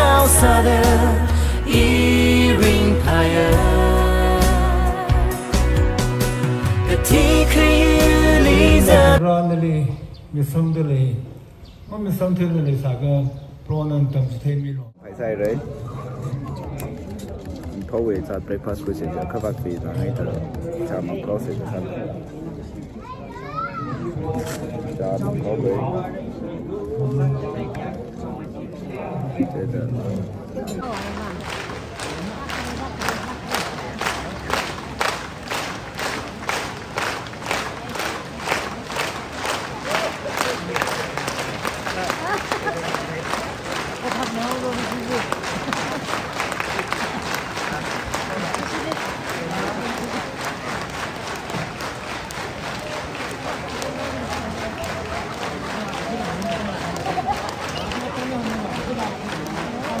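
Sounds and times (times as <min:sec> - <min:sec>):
crowd applause: 0:30.8 - 1:00.0
crowd clapping in unison: 0:30.8 - 1:00.0.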